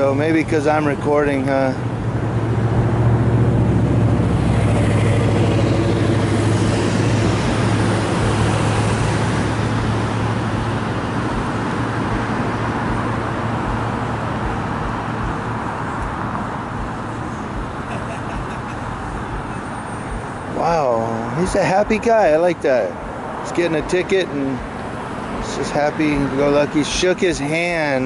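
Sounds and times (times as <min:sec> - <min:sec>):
vehicle engine hum and road noise: 0:00.0 - 0:28.0.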